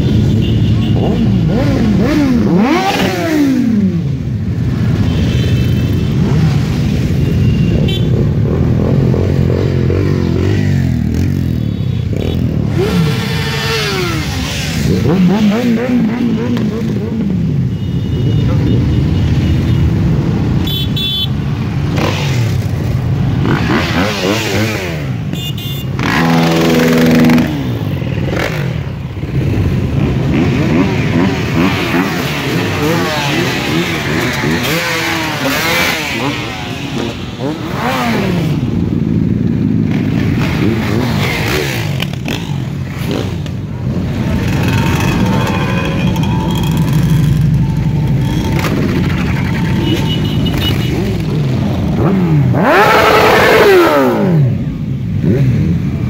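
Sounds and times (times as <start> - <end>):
motorcycles revving past: 1.0 - 5.0, 8.3 - 17.4, 21.8 - 25.3, 26.0 - 56.0.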